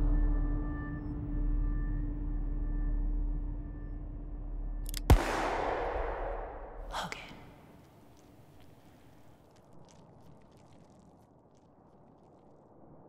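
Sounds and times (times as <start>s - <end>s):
low held drone: 0.0s - 4.8s
loud gunshot ringing out: 5.1s - 6.9s.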